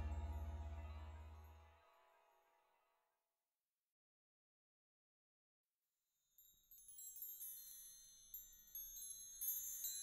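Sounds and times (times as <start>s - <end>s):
high tinkling chimes: 0.0s - 1.5s, 6.3s - 10.0s.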